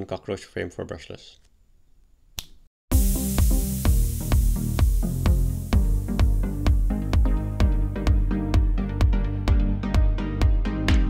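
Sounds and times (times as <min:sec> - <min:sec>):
finger snap: 0:02.4 - 0:02.7
electronic music with steady beat: 0:02.9 - 0:11.0.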